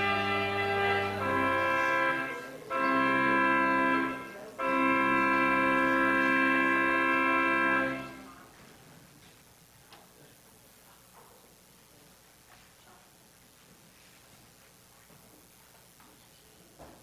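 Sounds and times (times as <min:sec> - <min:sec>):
organ chords: 0:00.0 - 0:08.6.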